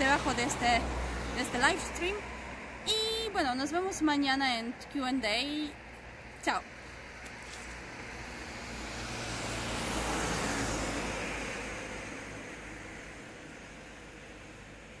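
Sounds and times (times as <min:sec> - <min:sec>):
road vehicle passing by: 0:00.0 - 0:15.0.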